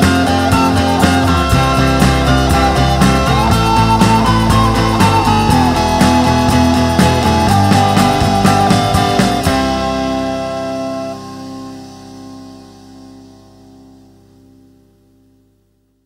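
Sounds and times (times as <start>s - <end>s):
indie rock band playing: 0.0s - 13.0s
held guitar chord ringing: 0.0s - 14.3s.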